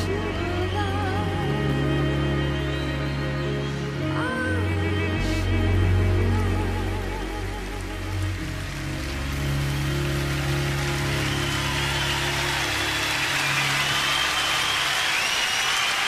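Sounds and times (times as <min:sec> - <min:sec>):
audience applause: 0:05.8 - 0:16.0
crowd whistling: 0:09.9 - 0:16.0.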